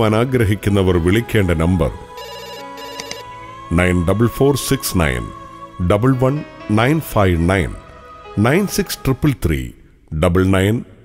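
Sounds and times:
man's voice: 0.0s - 2.2s, 3.3s - 11.0s
electronic telephone ringtone: 2.2s - 3.3s.

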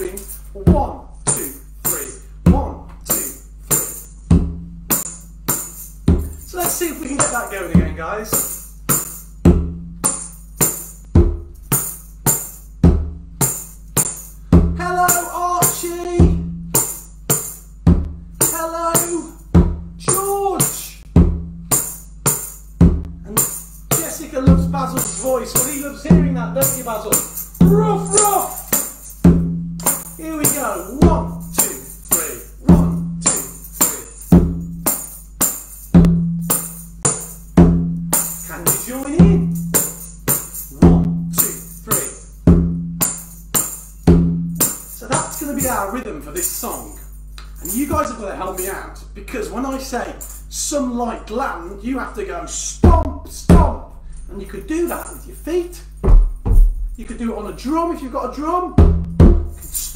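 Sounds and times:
man's voice: 0.0s - 3.5s, 6.5s - 8.4s, 14.8s - 16.4s, 18.5s - 19.4s, 20.0s - 21.0s, 23.3s - 28.8s, 30.2s - 34.2s, 38.5s - 39.5s, 40.8s - 42.3s, 45.0s - 47.0s, 47.6s - 55.9s, 57.0s - 58.8s
tambourine jingles: 0.0s - 49.0s, 49.7s - 50.9s, 52.6s - 59.9s
hand drum beat: 2.4s - 46.0s, 52.8s - 53.9s, 56.0s - 57.0s, 58.8s - 59.9s.

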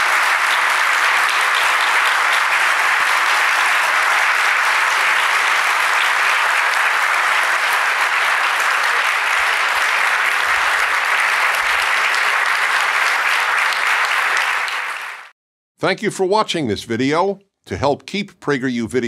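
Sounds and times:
large audience applauding: 0.0s - 15.3s.

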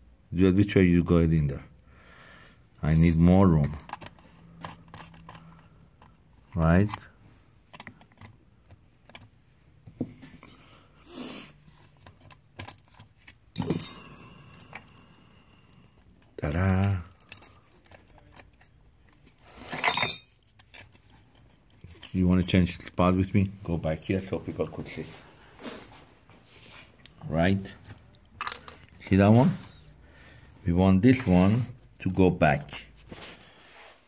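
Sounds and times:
faint steady hum: 0.0s - 31.2s
screwdriver clicks and scrapes: 3.8s - 9.3s, 11.8s - 13.9s, 17.1s - 22.9s.

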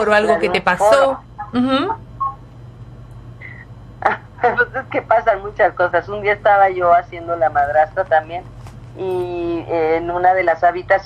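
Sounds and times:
telephone line hum: 0.0s - 11.0s
electronic beeps: 1.4s - 2.4s.

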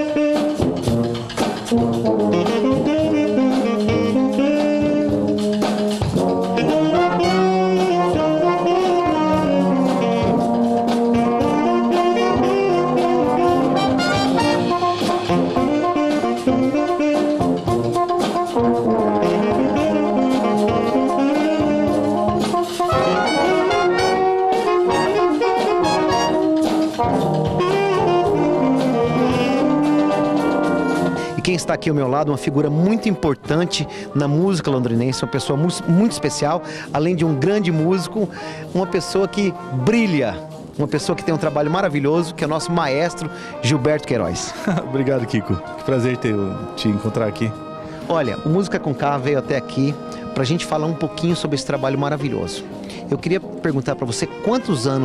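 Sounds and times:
tenor saxophone melody: 0.0s - 31.9s, 35.0s - 55.0s
brass concert band: 0.0s - 55.0s
drums: 0.0s - 55.0s.

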